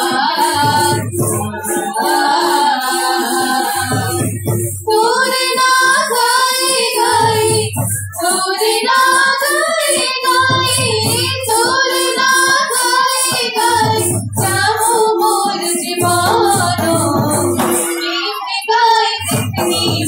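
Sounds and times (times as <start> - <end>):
rapid high-pitched beat: 0.0 - 20.0.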